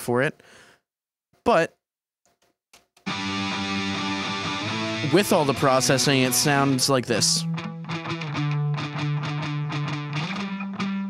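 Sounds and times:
distorted electric guitar chords: 0:03.1 - 0:11.0.

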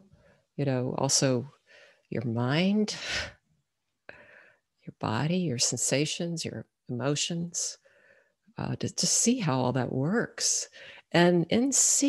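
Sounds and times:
woman speaking: 0:00.6 - 0:03.4, 0:04.9 - 0:07.8, 0:08.6 - 0:12.0
soft breath: 0:01.6 - 0:02.1, 0:04.1 - 0:04.7, 0:07.8 - 0:08.4, 0:10.7 - 0:11.1.

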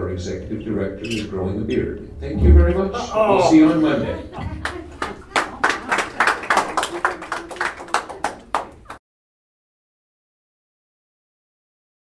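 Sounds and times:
audience applauding: 0:04.6 - 0:09.0.

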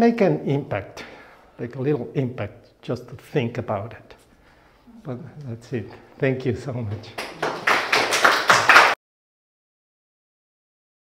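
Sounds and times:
audience applauding: 0:07.2 - 0:09.0.

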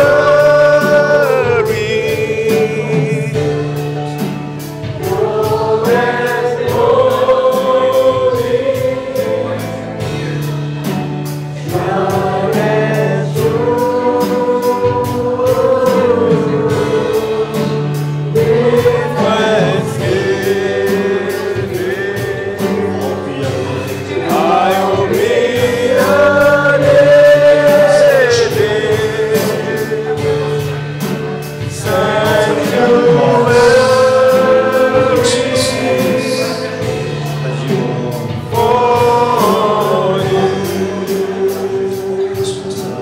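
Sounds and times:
congregation singing: 0:00.0 - 0:43.0
instrumental accompaniment with beat: 0:00.0 - 0:43.0.

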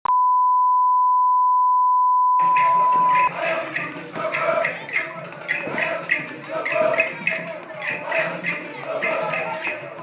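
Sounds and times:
steady test tone: 0:00.1 - 0:03.8
quiet rhythmic beat: 0:02.4 - 0:10.0.

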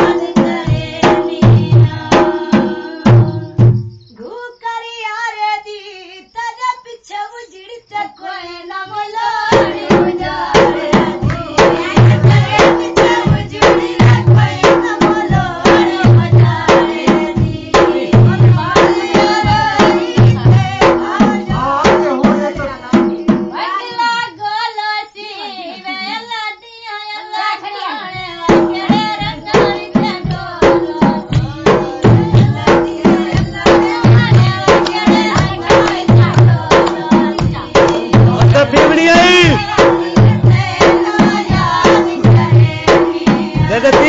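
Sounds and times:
drum beat: 0:00.0 - 0:04.0, 0:08.9 - 0:23.6, 0:28.1 - 0:44.0
high-pitched singing voice: 0:04.2 - 0:44.0
high-pitched voice singing: 0:25.2 - 0:26.2.

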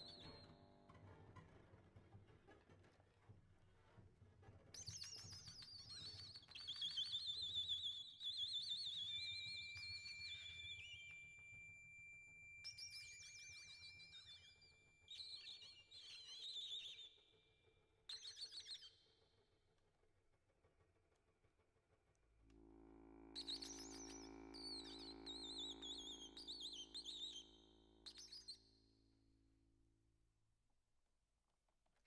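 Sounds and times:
warbling whistle-like tones: 0:23.4 - 0:28.6.

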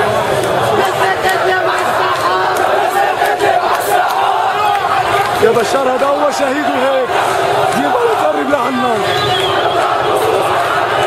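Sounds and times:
crowd noise: 0:00.0 - 0:11.0
crowd of men chanting: 0:00.0 - 0:11.0.

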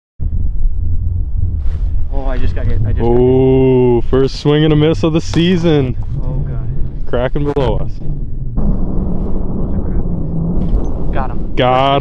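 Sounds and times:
wind rumbling on microphone: 0:00.2 - 0:12.0
man talking: 0:02.1 - 0:08.0, 0:11.6 - 0:12.0.

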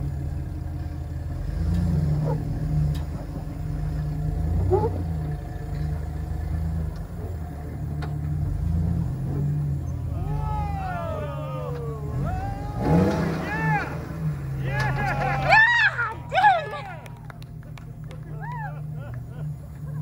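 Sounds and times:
engine running low: 0:00.0 - 0:20.0
onlookers shouting: 0:10.0 - 0:19.5.

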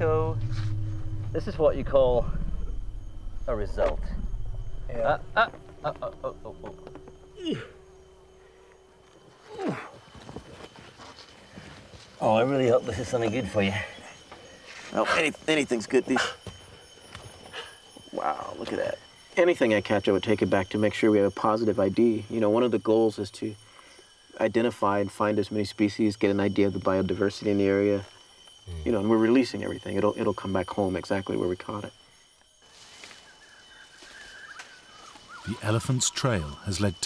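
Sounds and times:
low background sound: 0:00.0 - 0:10.7
faint wavering chirping calls: 0:00.0 - 0:37.0
steady high hiss: 0:00.0 - 0:37.0.

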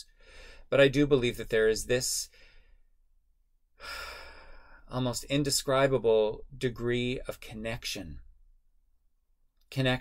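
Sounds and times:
man breathing in: 0:00.0 - 0:00.7, 0:02.3 - 0:02.9, 0:03.8 - 0:04.9.

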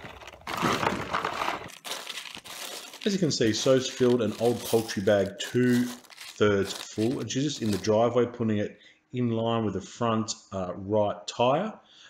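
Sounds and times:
feed bag crinkling: 0:00.0 - 0:08.0.

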